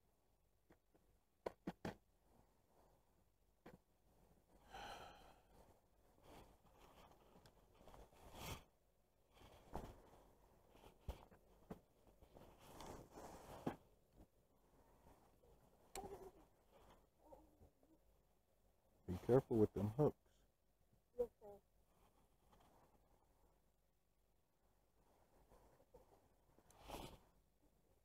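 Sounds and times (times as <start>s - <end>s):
faint clothing rustles: 5.3s - 18.3s, 21.6s - 28.0s.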